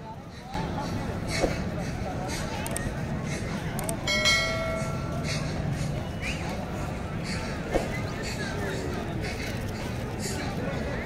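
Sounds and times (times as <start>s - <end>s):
bright bell ding: 4.1s - 5.2s.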